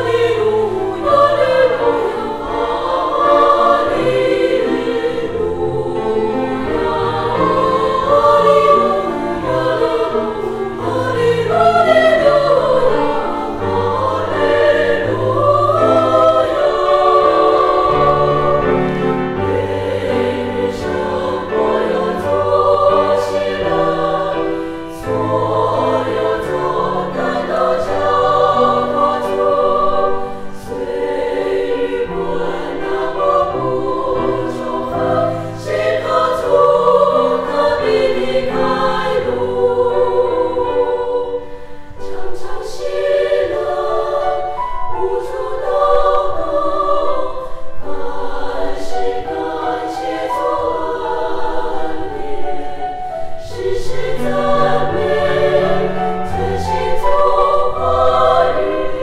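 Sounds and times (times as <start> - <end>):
women's choir singing a hymn: 0.0 - 59.0.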